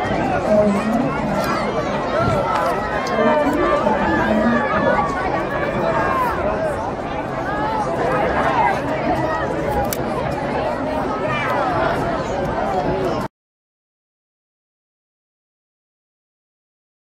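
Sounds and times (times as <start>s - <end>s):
spectators chattering: 0.0s - 13.3s.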